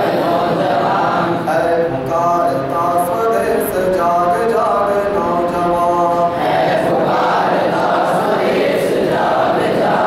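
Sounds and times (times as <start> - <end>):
man chanting into a microphone: 0.6 - 7.0.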